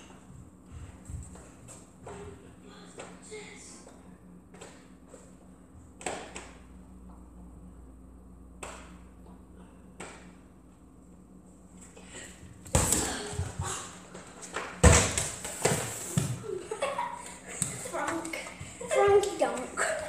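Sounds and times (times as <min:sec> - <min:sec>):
ball thudding against floor and walls: 0:12.6 - 0:13.7, 0:14.4 - 0:16.4.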